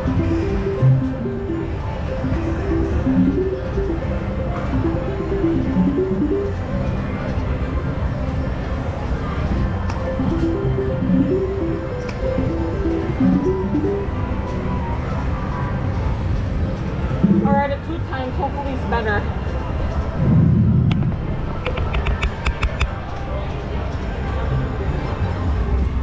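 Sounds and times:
slot machine electronic melody: 0.0 - 8.7, 9.8 - 15.7
casino din: 10.1 - 14.4.

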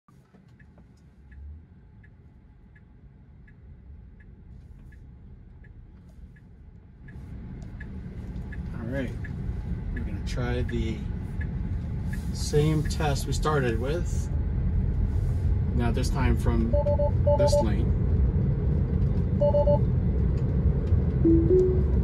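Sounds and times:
turn signal ticking: 0.1 - 13.5, 16.7 - 17.7, 19.1 - 22.0
road and tyre noise: 0.1 - 22.0.

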